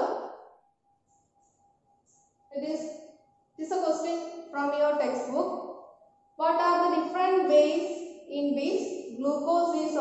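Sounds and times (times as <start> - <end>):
faint steady tone: 0.0 - 10.0
woman speaking: 2.5 - 2.9, 3.6 - 5.6, 6.4 - 10.0.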